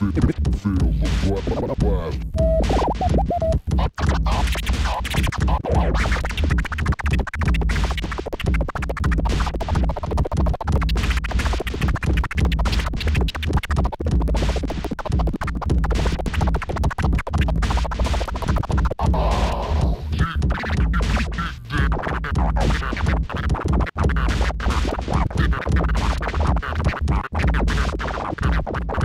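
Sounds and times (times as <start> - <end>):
bass-heavy backing music: 0.0 - 29.0
vinyl record scratching: 0.0 - 29.0.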